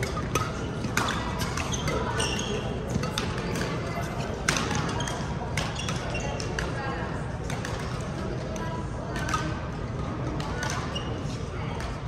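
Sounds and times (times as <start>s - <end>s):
racket hitting shuttlecock: 0.0s - 6.8s, 7.4s - 8.0s
background chatter: 0.0s - 12.0s
shoe squeaks on court floor: 0.4s - 6.6s, 10.8s - 11.4s.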